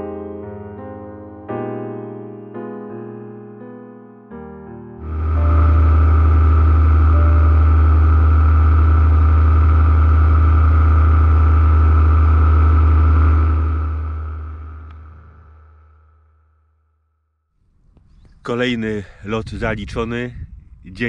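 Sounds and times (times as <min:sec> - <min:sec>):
small aircraft engine and propeller: 0:05.0 - 0:15.8
rushing air: 0:05.0 - 0:15.9.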